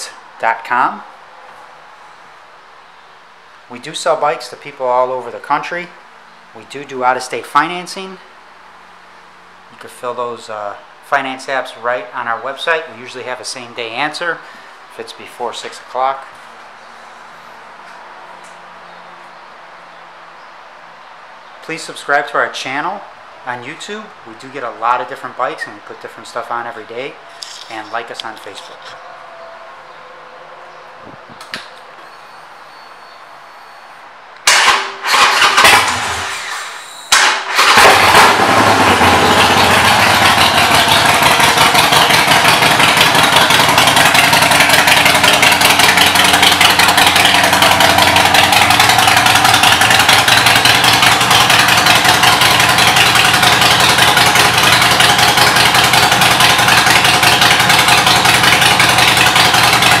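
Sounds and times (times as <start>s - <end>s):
motorcycle engine starting and idling: 34.4s - 60.0s.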